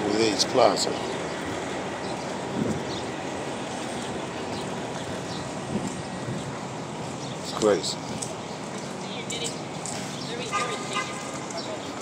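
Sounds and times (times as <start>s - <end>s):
city traffic noise: 0.0s - 12.0s.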